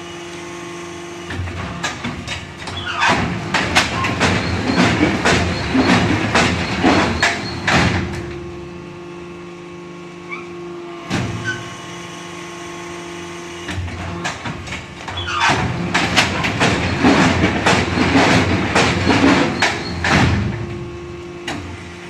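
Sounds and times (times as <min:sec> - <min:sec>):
machine motor hum: 0:00.0 - 0:22.0
machine knocking and clattering: 0:01.3 - 0:08.5, 0:13.7 - 0:21.9.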